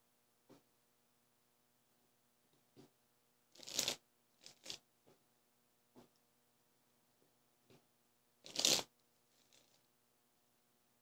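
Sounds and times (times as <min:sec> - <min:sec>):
cards shuffled by hand: 0:03.6 - 0:04.8, 0:08.5 - 0:09.9.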